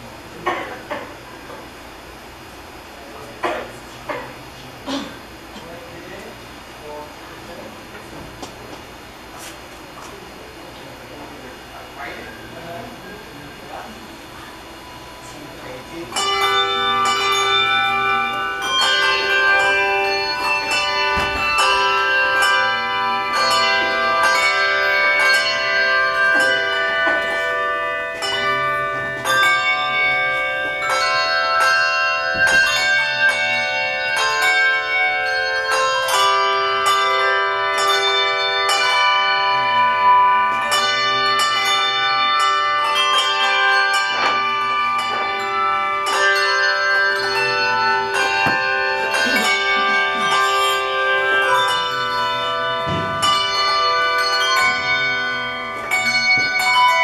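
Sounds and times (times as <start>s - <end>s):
handbell choir playing: 12.0s - 57.0s.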